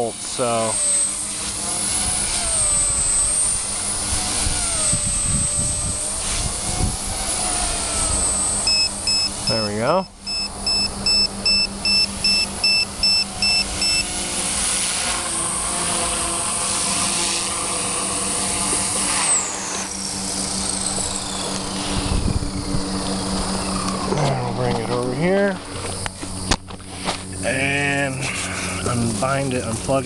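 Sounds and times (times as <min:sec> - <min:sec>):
helicopter motor whine: 0:00.0 - 0:30.0
low-battery alarm beeping: 0:08.1 - 0:14.2.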